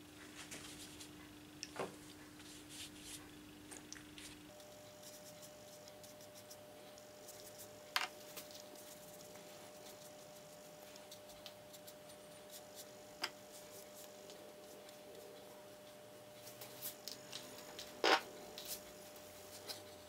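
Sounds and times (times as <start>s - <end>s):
brush scratching on paper: 4.5s - 15.2s.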